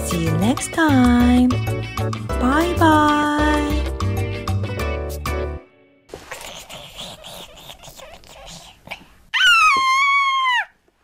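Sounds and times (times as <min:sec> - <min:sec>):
child squealing: 0:09.3 - 0:10.8.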